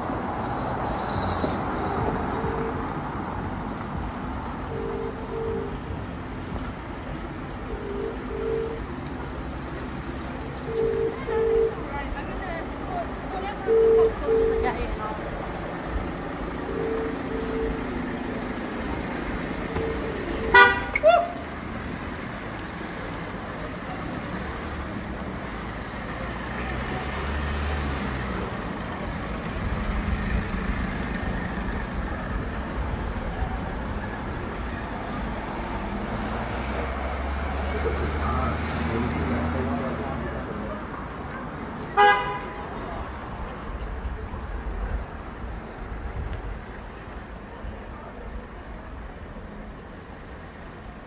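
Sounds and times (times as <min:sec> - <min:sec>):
cars passing: 0:00.0 - 0:51.0
car horn toot: 0:04.7 - 0:05.9, 0:07.7 - 0:08.8, 0:19.8 - 0:21.4, 0:41.9 - 0:42.6.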